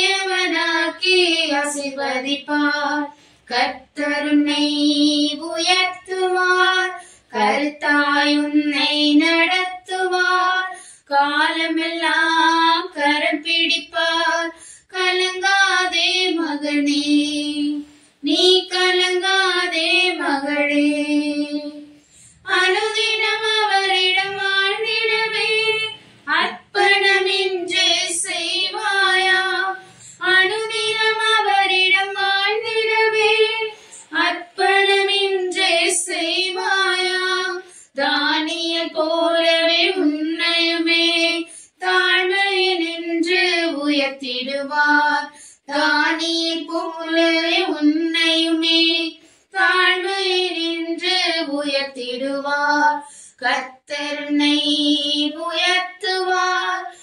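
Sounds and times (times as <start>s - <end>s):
high voice singing unaccompanied: 0.0s - 57.0s.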